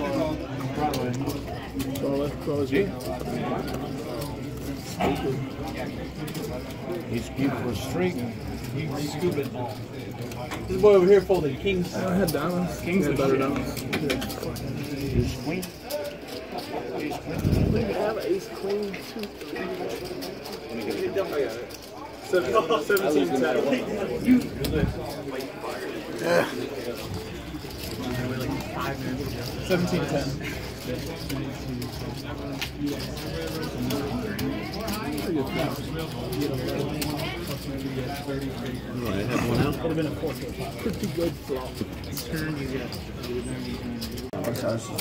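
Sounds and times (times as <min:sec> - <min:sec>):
indistinct chatter: 0:00.0 - 0:45.0
people talking: 0:00.0 - 0:45.0.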